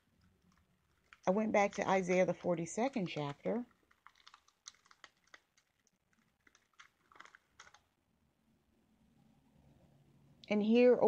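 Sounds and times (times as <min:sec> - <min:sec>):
typing on computer keyboard: 0:00.2 - 0:07.8.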